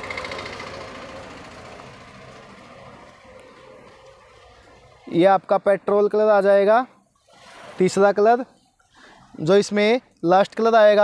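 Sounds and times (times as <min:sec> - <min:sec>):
faint engine rumble: 0:00.0 - 0:05.1.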